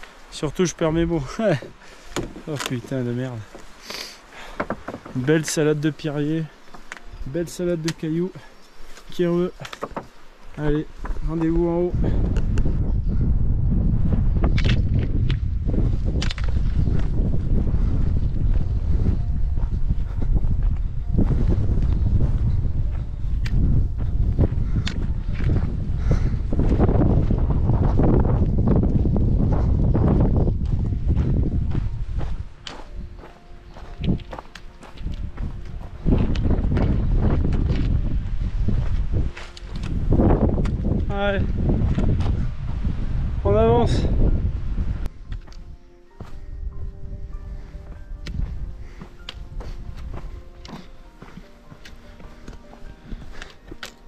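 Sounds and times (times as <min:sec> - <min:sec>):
footsteps crunching on gravel: 0:00.0 - 0:12.6, 0:14.3 - 0:43.0, 0:45.3 - 0:54.0
wind buffeting microphone: 0:09.1 - 0:53.8.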